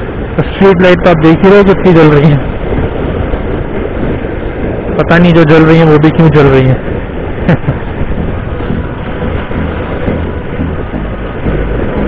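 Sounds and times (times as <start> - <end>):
traffic noise: 0.0 - 12.0
wind buffeting microphone: 0.0 - 12.0
motorcycle engine: 7.9 - 12.0.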